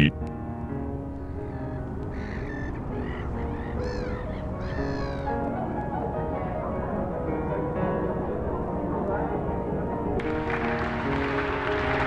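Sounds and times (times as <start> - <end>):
soft background music: 0.0 - 12.0
bird cawing: 1.2 - 5.4.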